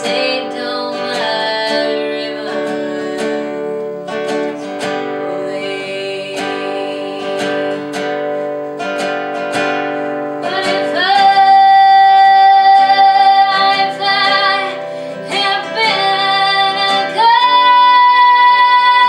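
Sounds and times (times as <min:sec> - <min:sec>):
woman singing: 0:00.0 - 0:08.2, 0:10.4 - 0:19.0
strummed acoustic guitar: 0:00.0 - 0:19.0.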